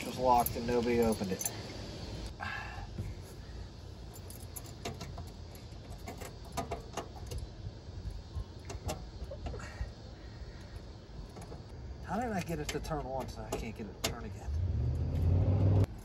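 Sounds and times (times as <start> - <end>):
keys jangling: 0.3 - 1.7, 4.1 - 7.4.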